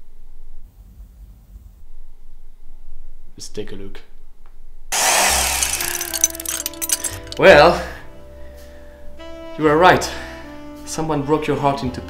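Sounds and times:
power tool running: 4.9s - 7.3s.

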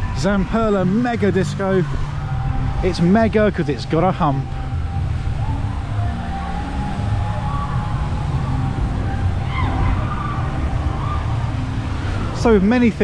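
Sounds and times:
drawn-out wavering tone: 0.0s - 12.6s
faint piped music: 0.0s - 13.0s
steady low rumble: 0.0s - 13.0s.

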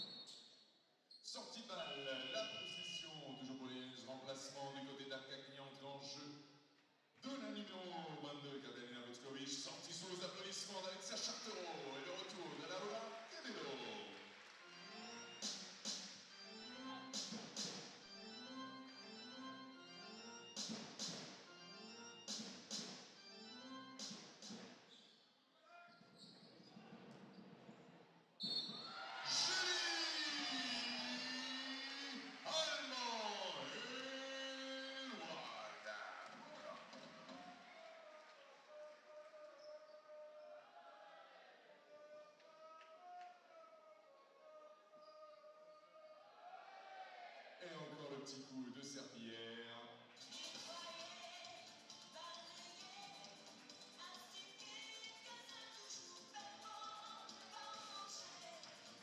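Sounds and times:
amplified voice over loudspeakers: 1.3s - 6.3s, 7.2s - 14.2s, 29.0s - 40.5s
arena music over loudspeakers: 9.8s - 24.8s, 28.7s - 39.8s, 50.1s - 59.0s.

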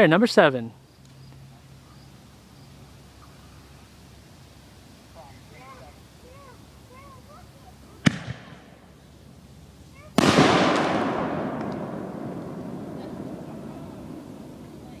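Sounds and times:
firework launch bang: 8.0s - 8.7s, 10.0s - 14.9s
firework shell burst: 10.2s - 14.8s.

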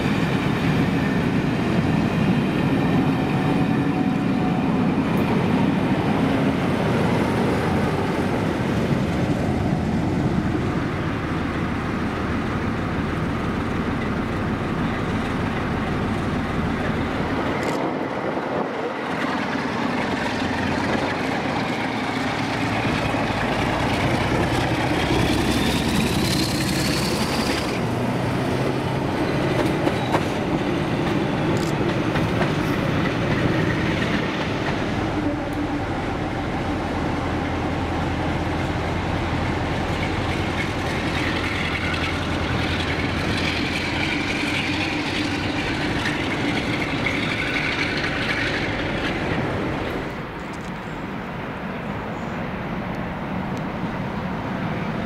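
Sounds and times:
diesel locomotive engine whine: 0.0s - 55.0s
distant rail noise: 0.0s - 55.0s
coaches clattering over rail joints: 12.2s - 50.9s.

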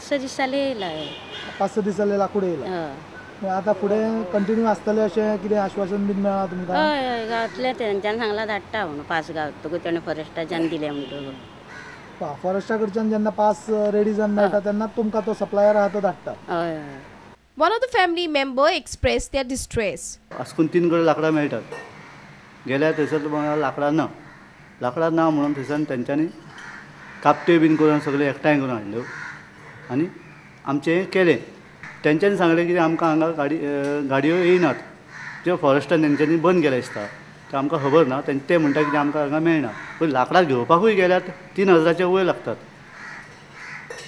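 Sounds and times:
woman talking: 0.0s - 1.2s, 2.7s - 3.0s, 6.8s - 11.1s, 16.5s - 20.2s
crow cawing: 4.2s - 5.0s, 6.4s - 8.6s, 11.7s - 12.2s, 15.6s - 16.2s, 21.9s - 25.9s, 26.5s - 30.5s, 31.6s - 32.1s, 34.2s - 40.9s, 42.8s - 44.0s.

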